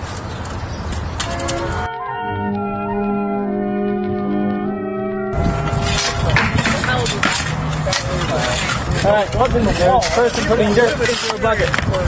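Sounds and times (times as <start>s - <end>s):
music: 1.3s - 6.4s
background voices talking: 5.4s - 12.0s
shovels scraping into rubble: 5.7s - 11.8s.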